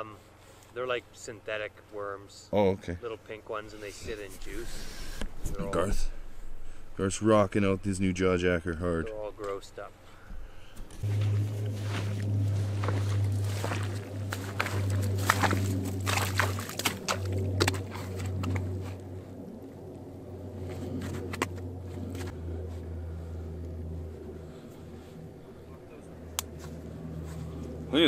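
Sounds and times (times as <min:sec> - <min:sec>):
steady low hum: 0:00.0 - 0:28.0
boots crunching in snow: 0:10.9 - 0:18.6.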